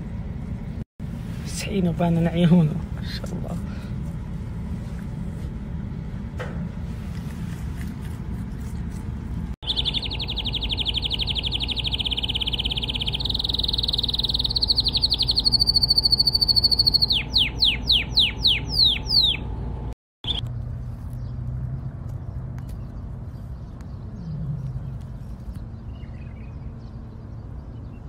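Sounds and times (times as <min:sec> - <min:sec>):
canary singing: 0:09.6 - 0:20.5.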